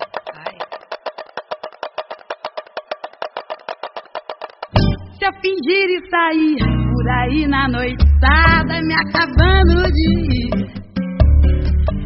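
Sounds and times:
wooden percussion fast clicks: 0.0s - 5.3s.

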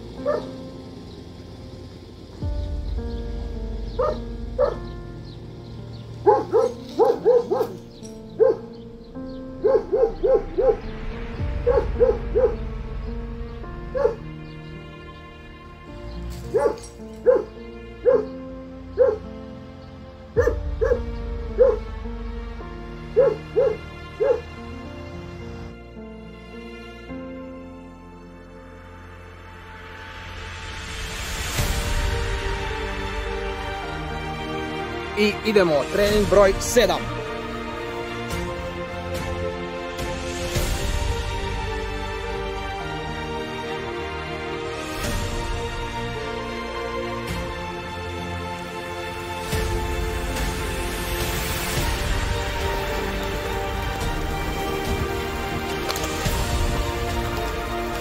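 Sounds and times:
background music with held chords: 0.0s - 58.0s
dog barking: 0.2s - 0.6s, 4.0s - 4.8s, 6.2s - 8.7s, 9.6s - 10.9s, 11.6s - 12.6s, 13.9s - 14.2s, 16.5s - 18.4s, 19.0s - 19.3s, 20.4s - 21.9s, 23.1s - 24.5s.

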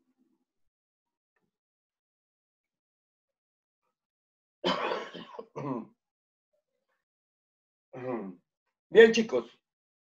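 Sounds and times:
man coughing: 4.6s - 5.8s.

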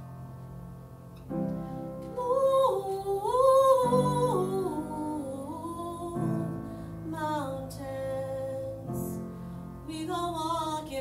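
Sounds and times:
woman singing: 2.0s - 9.2s, 9.8s - 11.0s.

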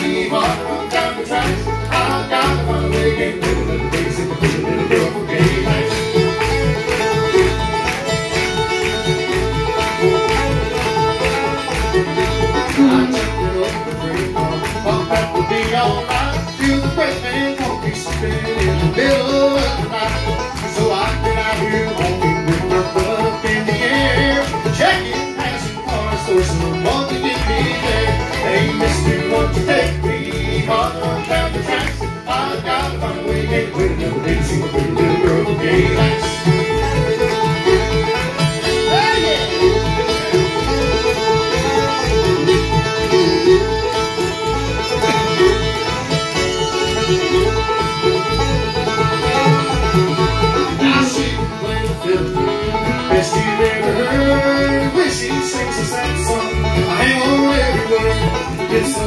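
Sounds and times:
banjo: 0.0s - 59.0s
fiddle: 0.0s - 59.0s
strummed acoustic guitar: 0.0s - 59.0s.

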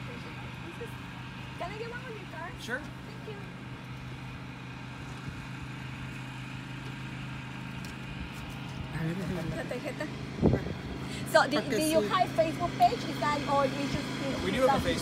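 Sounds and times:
motor humming: 0.0s - 15.0s.

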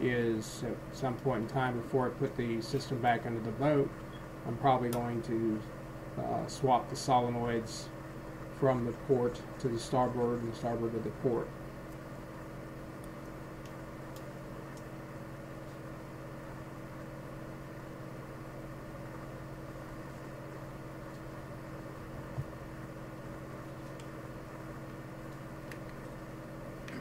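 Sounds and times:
low machine hum: 0.0s - 27.0s.

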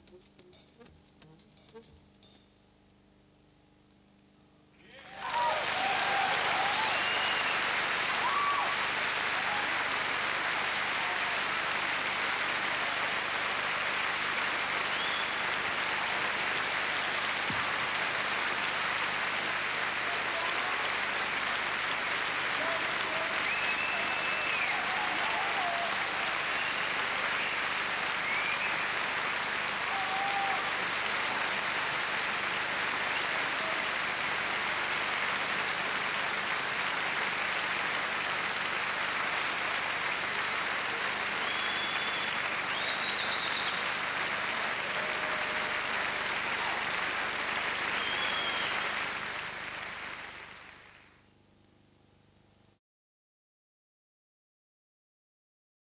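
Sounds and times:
audience applause: 4.8s - 51.2s.

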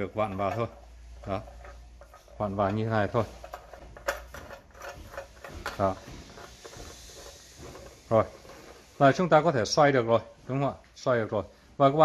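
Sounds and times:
faint handling sound: 0.0s - 11.1s
clicks of joint being screwed: 0.2s - 8.9s.

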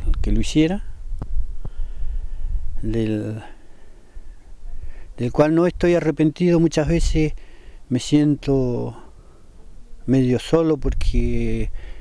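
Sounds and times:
wind buffeting microphone: 0.0s - 3.1s, 10.8s - 11.9s
man's voice: 10.0s - 11.8s.

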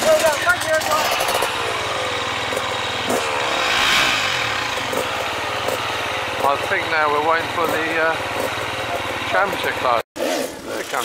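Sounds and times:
dirt bike engine revving: 0.0s - 11.0s.

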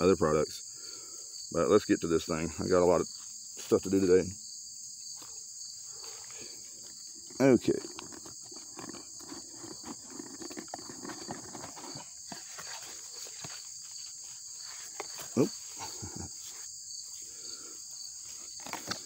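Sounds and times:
crickets chirring: 0.0s - 19.0s
cardboard box rustling and clicking: 7.3s - 13.8s, 18.6s - 19.0s.

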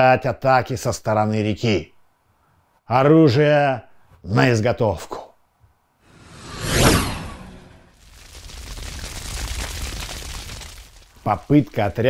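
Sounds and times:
whoosh sound effect: 6.1s - 8.0s
fire crackling: 6.2s - 12.0s.

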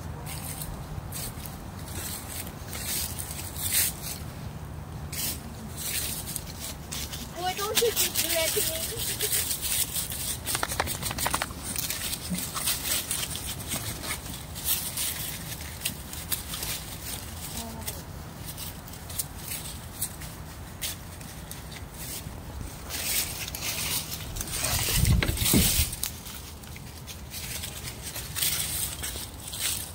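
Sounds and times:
dry leaves crunching underfoot: 0.1s - 29.9s.

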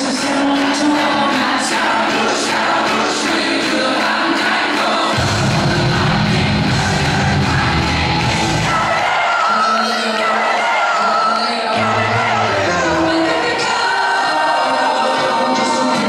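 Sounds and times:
pop song with singing: 0.0s - 16.0s
heavy bass line: 5.1s - 9.0s.

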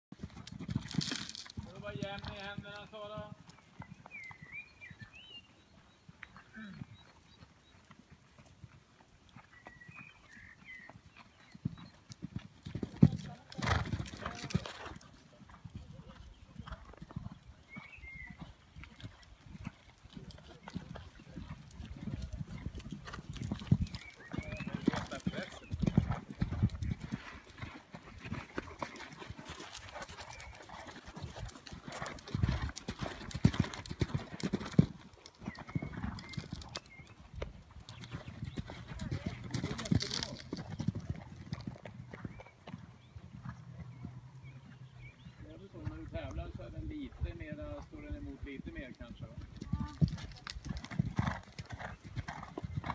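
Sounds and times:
horse hooves cantering on sand: 0.1s - 52.9s.

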